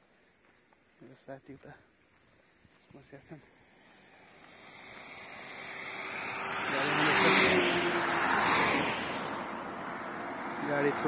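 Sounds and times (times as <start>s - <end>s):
vehicle passing by: 3.6s - 11.0s.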